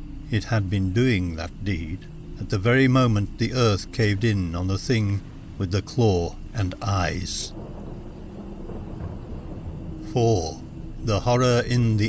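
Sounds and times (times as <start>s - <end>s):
low rumbling dark ambience: 0.0s - 12.0s.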